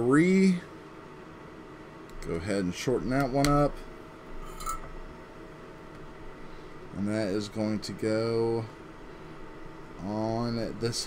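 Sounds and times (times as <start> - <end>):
low hum: 0.8 - 11.0.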